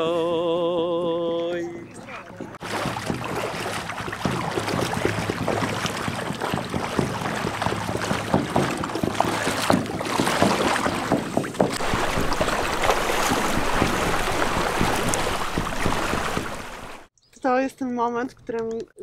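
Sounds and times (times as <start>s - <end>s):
water splashing from wading: 0.8s - 17.1s.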